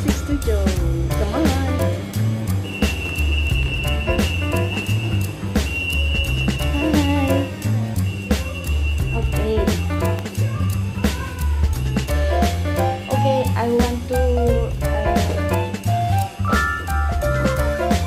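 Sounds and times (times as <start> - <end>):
music with bass beat and melody: 0.0 - 18.0.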